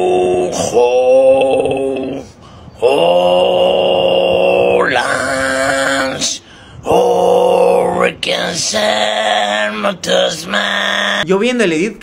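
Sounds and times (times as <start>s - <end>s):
man moaning: 0.0s - 11.2s.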